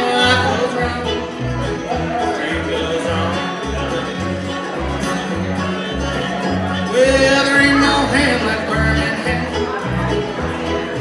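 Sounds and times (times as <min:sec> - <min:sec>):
banjo: 0:00.0 - 0:11.0
fiddle: 0:00.0 - 0:11.0
upright bass beats: 0:00.0 - 0:11.0.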